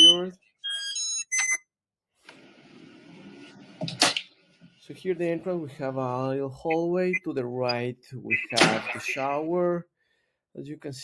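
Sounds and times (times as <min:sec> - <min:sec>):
keypad lock beeps: 0:00.0 - 0:01.7.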